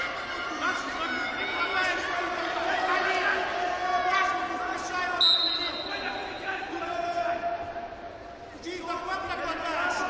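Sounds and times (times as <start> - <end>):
murmur of voices: 0.0 - 10.0
referee's whistle blast: 5.2 - 6.4.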